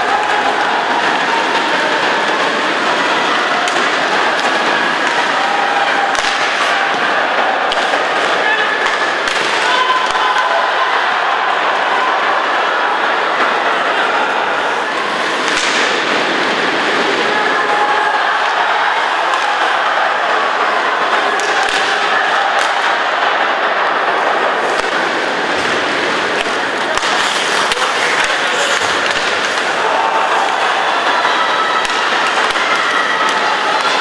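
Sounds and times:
crowd din: 0.0 - 34.0
hockey stick and puck knocks: 6.1 - 6.7, 15.4 - 16.2.

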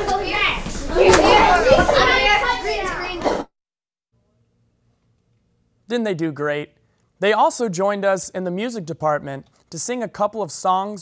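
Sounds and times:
children chattering excitedly: 0.0 - 3.5.

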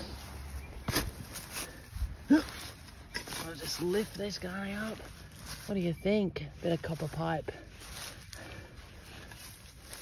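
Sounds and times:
spade thudding into turf: 0.9 - 1.3.

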